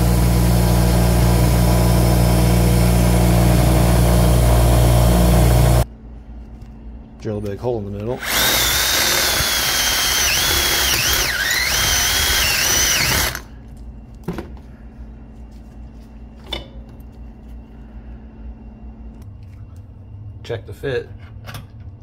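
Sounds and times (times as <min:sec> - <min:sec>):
power drill whining: 0:08.2 - 0:13.5.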